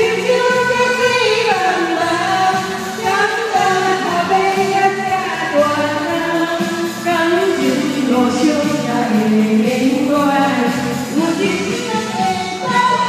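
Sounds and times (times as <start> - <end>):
karaoke backing track: 0.0 - 13.0
woman singing into microphone: 0.0 - 13.0.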